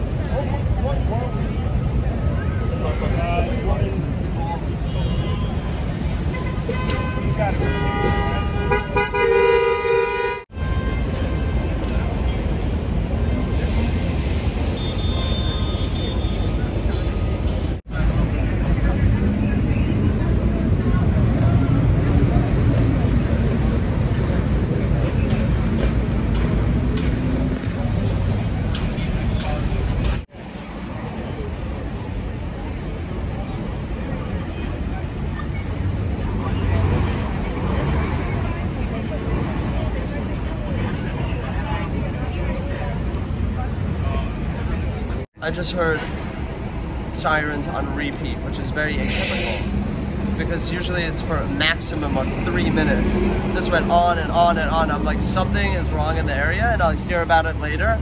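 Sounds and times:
city street traffic: 0.0s - 58.0s
car horn honking: 6.3s - 11.7s.

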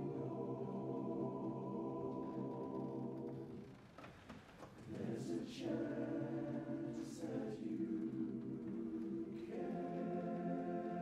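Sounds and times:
men's barbershop chorus singing: 4.9s - 11.0s.

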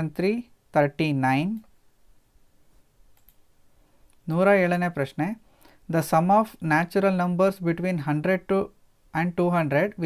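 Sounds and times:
faint clicks: 3.1s - 3.4s.

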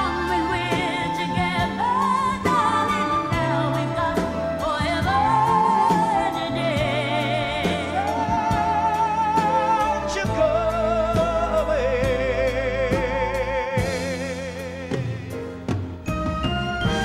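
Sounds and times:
band playing: 0.0s - 17.0s
man singing a ballad: 8.8s - 15.7s.

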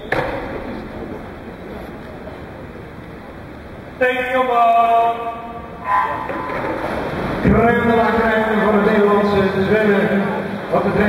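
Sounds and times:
pool hall background noise: 0.0s - 11.0s.

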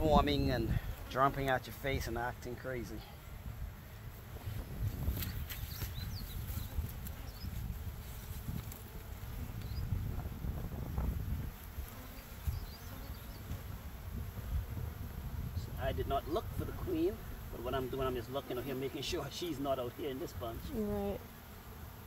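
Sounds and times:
bees buzzing: 0.0s - 22.0s.

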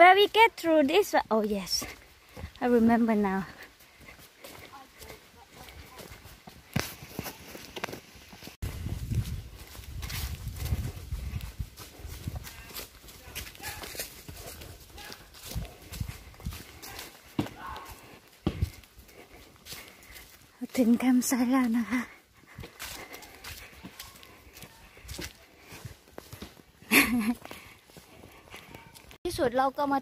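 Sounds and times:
footsteps on dirt path: 0.0s - 30.0s.

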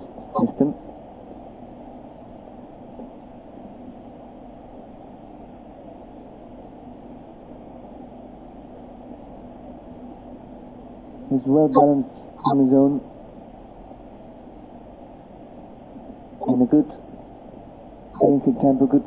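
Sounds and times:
faint hum: 0.0s - 19.0s.

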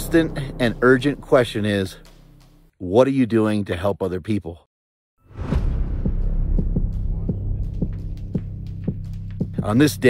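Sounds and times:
low sustained drone: 0.0s - 2.6s
soft pulsing beat: 0.0s - 2.7s, 5.8s - 10.0s.

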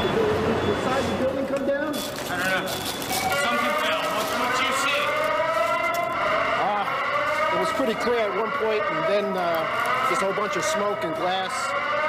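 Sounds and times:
siren-like tone rising in pitch: 2.4s - 12.0s
man's voice: 6.6s - 11.9s.

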